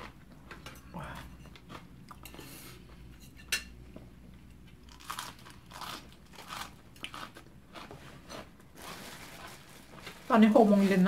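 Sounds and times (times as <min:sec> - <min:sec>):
person chewing crunchy food: 0:04.5 - 0:09.6.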